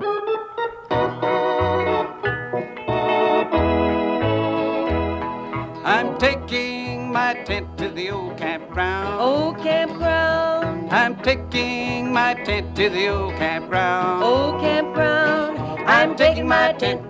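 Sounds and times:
banjo and guitar country music: 0.0 - 17.0.

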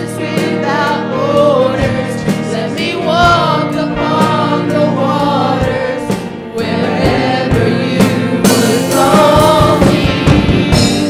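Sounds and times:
band with electric guitar: 0.0 - 11.0
woman singing into microphone: 0.0 - 11.0.

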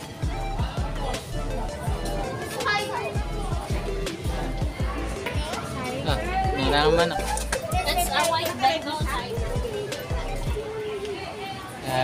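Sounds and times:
background music: 0.0 - 12.0
indistinct voices: 0.0 - 12.0.

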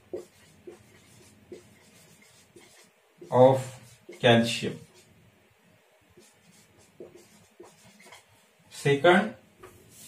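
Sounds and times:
marker scratching on whiteboard: 0.0 - 5.2, 6.2 - 9.0.

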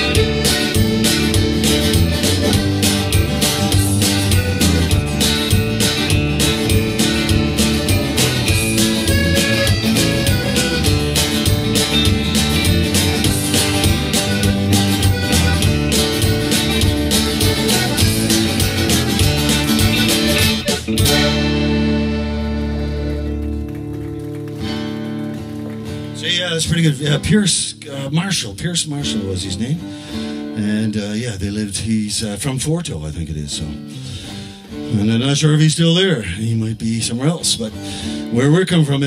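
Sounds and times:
button accordion: 0.0 - 23.7
electric bass: 0.0 - 29.8
strummed acoustic guitar: 0.0 - 39.0.

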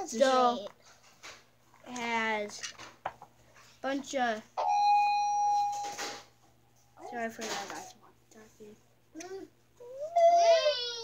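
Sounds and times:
electronic beep: 4.6 - 6.0.

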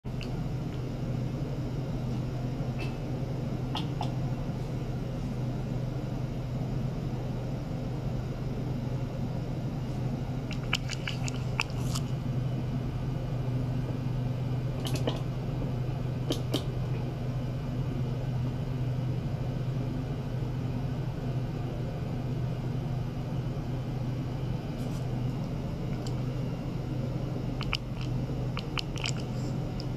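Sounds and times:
low electrical hum with hiss: 0.1 - 29.9.

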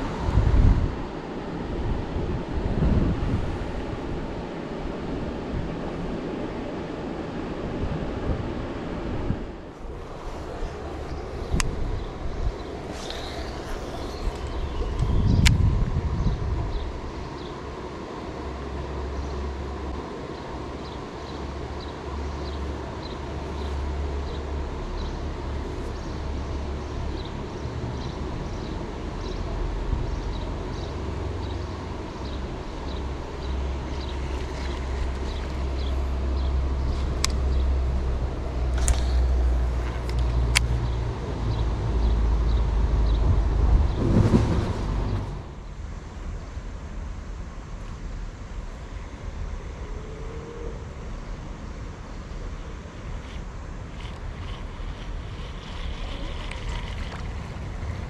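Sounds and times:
steady low rumble: 0.0 - 58.0.

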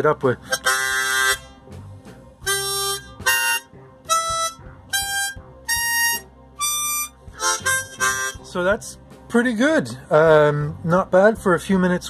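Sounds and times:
harmonica notes rising: 0.4 - 9.1.

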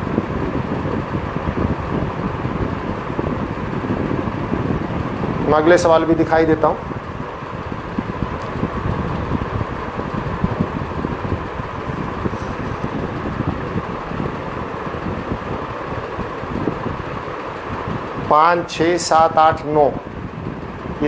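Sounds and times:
rushing air noise: 0.0 - 21.0.

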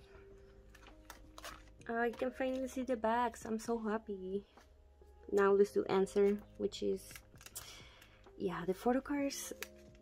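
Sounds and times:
plastic sleeve page crinkling: 0.6 - 3.0, 6.2 - 8.2, 9.5 - 10.0.

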